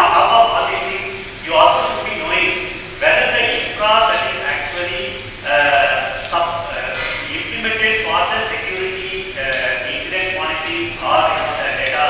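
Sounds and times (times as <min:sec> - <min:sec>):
man talking into a microphone: 0:00.0 - 0:12.0.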